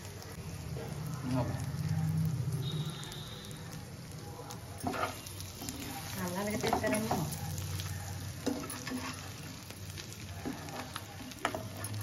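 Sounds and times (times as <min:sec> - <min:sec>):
eggs sizzling in hot oil: 0:00.0 - 0:12.0
spoon scraping and clicking on pan: 0:04.8 - 0:05.9, 0:08.4 - 0:09.4, 0:10.4 - 0:12.0.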